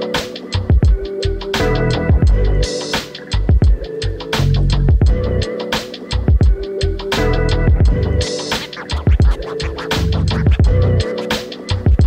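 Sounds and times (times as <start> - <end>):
electronic beat music: 0.0 - 12.0.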